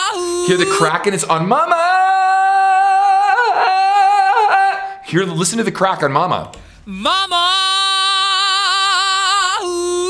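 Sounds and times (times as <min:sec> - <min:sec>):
man singing a high note: 0:00.0 - 0:05.1.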